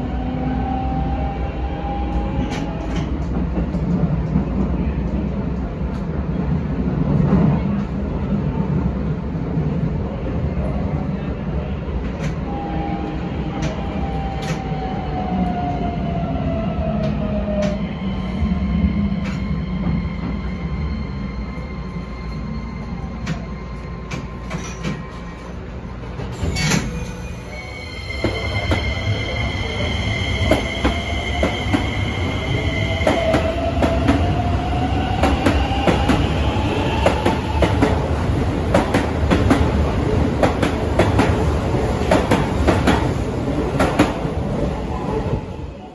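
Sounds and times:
train passing with high tones: 0.0 - 45.9.

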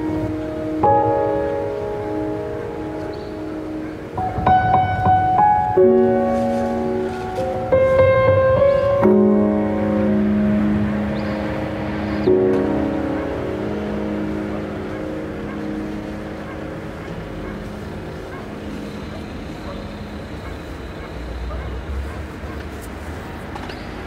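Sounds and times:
sustained pitched drone tones: 5.8 - 22.6.

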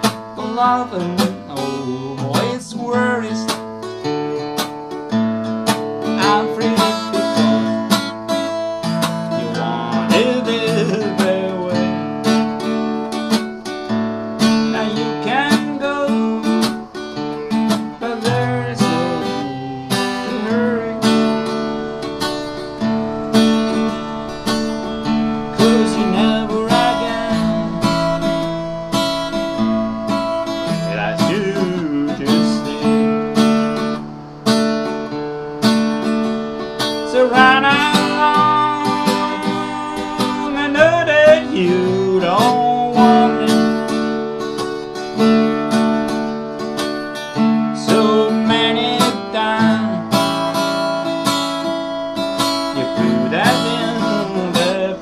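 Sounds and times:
acoustic guitar strumming: 0.0 - 55.0.

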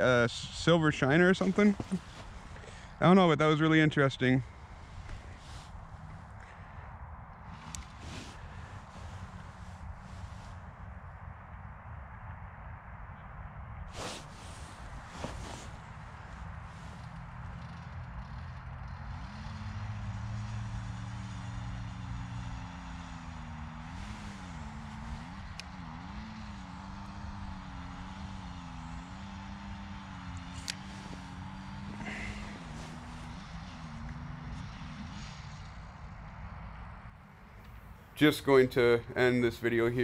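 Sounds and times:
engine running: 0.0 - 11.2, 13.9 - 39.7.

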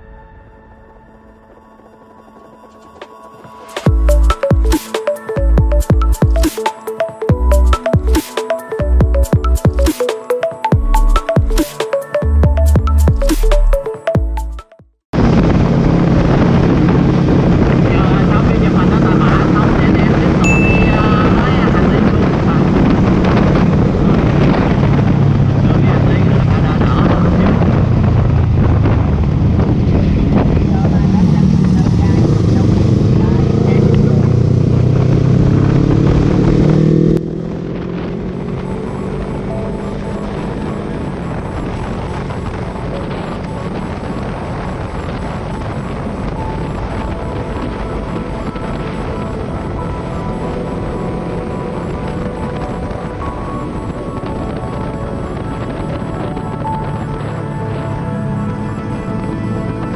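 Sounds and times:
motorcycle engine accelerating: 15.2 - 46.4
wind rush on microphone: 15.2 - 59.9.

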